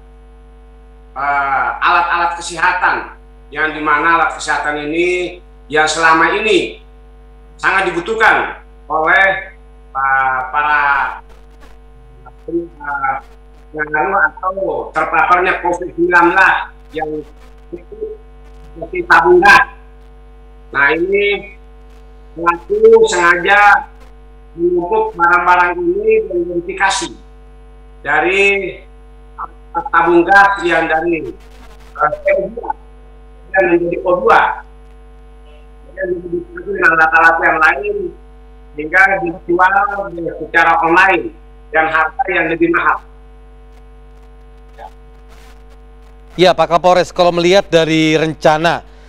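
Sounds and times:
electrical mains hum: 0.0 - 49.0
man talking: 1.2 - 6.8, 7.6 - 11.3, 12.0 - 18.2, 18.8 - 19.8, 20.7 - 21.6, 22.4 - 24.0, 24.6 - 27.2, 28.0 - 28.8, 29.4 - 31.4, 38.8 - 43.0, 46.3 - 49.0.

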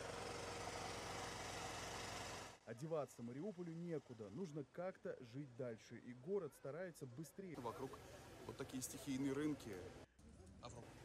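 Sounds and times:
outdoor noise: 0.0 - 11.0.

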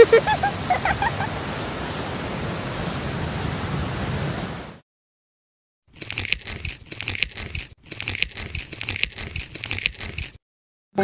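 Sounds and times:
crackling clicks and crunches: 5.9 - 10.4.

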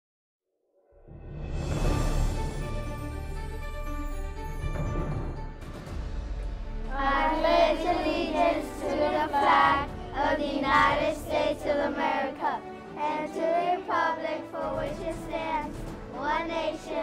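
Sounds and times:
children reciting in unison: 6.9 - 17.0.

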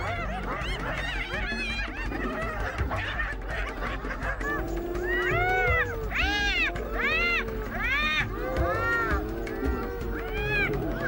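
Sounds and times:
animal wailing calls: 4.4 - 11.0.

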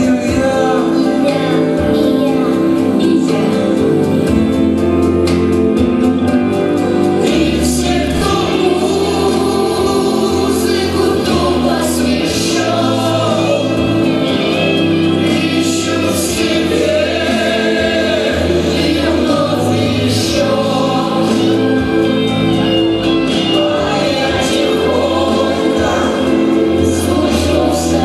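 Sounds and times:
group singing into microphones: 0.0 - 28.0
instrumental accompaniment with bass: 0.0 - 28.0.

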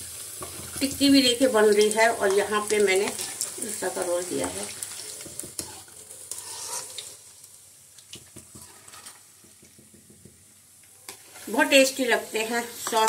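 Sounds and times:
food deep-frying in oil: 0.0 - 13.0
oil crackles: 0.4 - 9.3.

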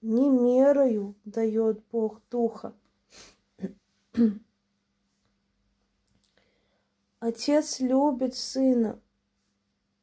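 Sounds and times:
woman clearing her throat: 3.6 - 4.5.

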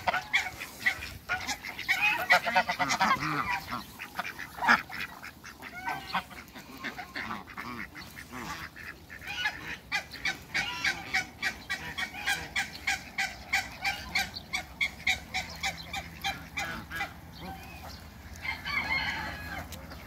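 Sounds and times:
geese honking: 0.0 - 20.0.

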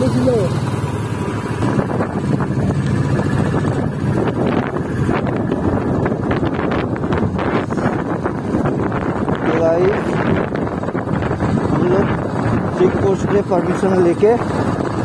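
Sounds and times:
motorcycle engine running: 0.0 - 15.0
wind noise on microphone: 1.3 - 15.0.

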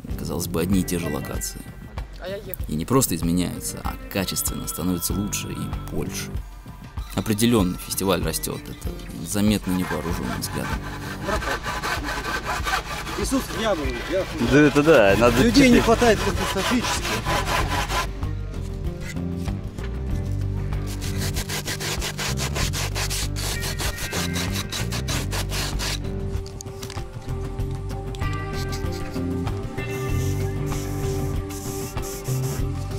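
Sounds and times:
hand saw cutting wood: 9.4 - 18.1, 20.8 - 26.1, 28.4 - 32.8
sandpaper rasping on wood: 9.4 - 18.1, 20.8 - 26.1, 28.5 - 32.9.

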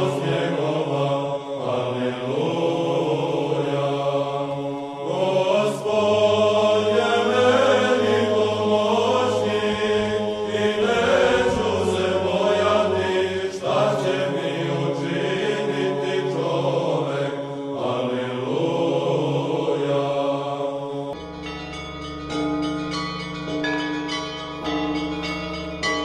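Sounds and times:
men chanting: 0.0 - 21.2
bells ringing: 4.6 - 17.2, 21.2 - 26.0.

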